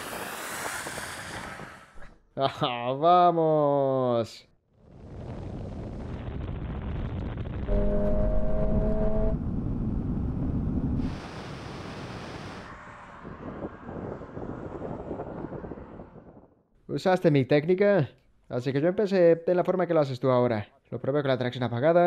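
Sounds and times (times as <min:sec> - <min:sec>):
brief rushing hiss: 0:00.0 - 0:02.0.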